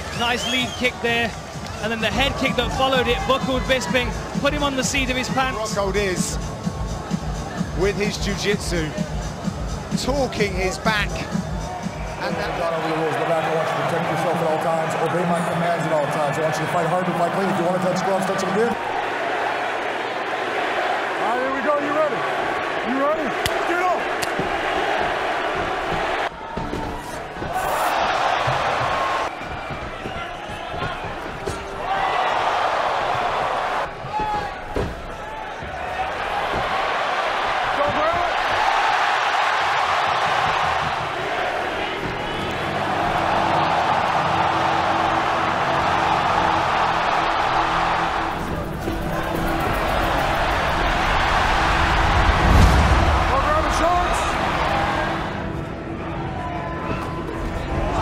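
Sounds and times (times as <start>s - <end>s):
crowd cheering and shouting: 0.0s - 58.0s.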